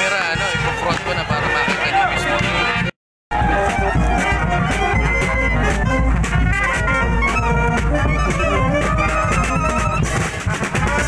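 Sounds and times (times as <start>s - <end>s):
marching brass band playing: 0.0s - 11.0s
sharp percussion hits: 2.4s - 11.0s.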